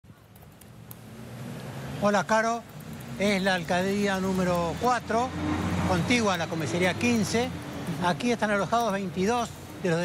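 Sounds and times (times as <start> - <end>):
street traffic: 0.0 - 10.0
vehicle engine approaching: 0.8 - 9.9.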